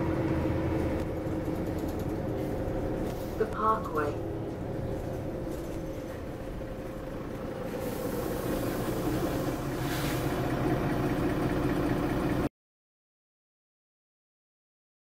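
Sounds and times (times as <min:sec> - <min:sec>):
bus diesel engine: 0:00.0 - 0:12.5
road noise: 0:00.0 - 0:12.5.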